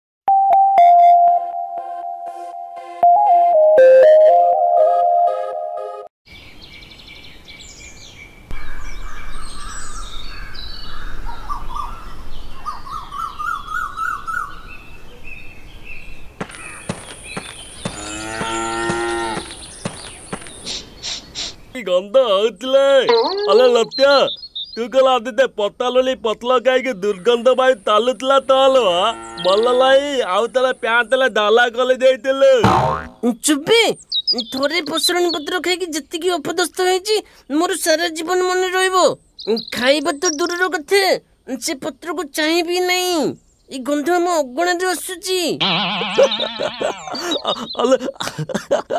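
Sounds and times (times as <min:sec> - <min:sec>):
birds chirping and trilling: 0:06.3 - 0:48.9
cow mooing: 0:17.9 - 0:19.5, 0:29.0 - 0:29.6
person speaking: 0:23.0 - 0:24.2
cartoon boing: 0:32.6 - 0:33.3, 0:45.6 - 0:47.1.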